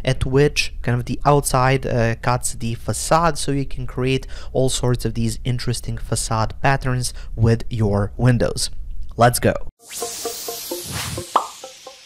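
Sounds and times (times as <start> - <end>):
whoosh: 9.8 - 12.0.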